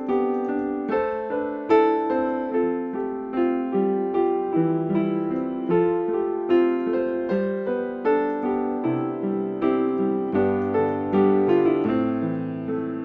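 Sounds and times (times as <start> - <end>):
upright piano playing: 0.0 - 13.0.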